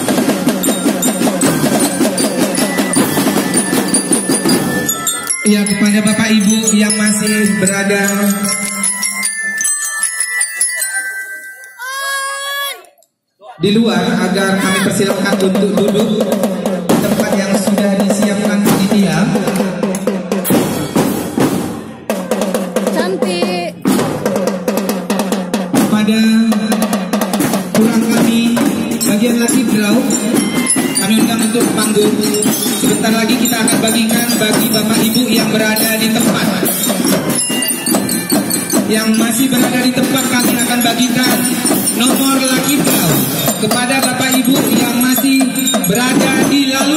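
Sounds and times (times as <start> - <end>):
snare and tenor drums: 0.0 - 5.2, 14.8 - 46.9
bell lyre notes: 0.5 - 12.7, 28.6 - 46.8.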